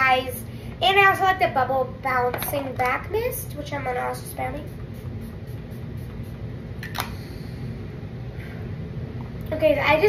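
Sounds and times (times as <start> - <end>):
low room hum: 0.0 - 10.0
spray bottle click: 6.8 - 7.2.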